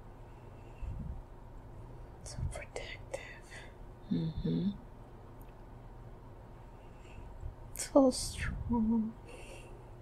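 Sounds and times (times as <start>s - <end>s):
low hum: 0.0s - 10.0s
woman whispering: 2.2s - 4.8s.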